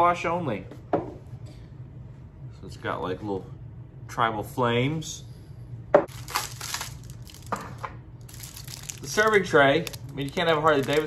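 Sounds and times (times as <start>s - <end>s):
plastic wrap crinkling: 6.1s - 11.0s.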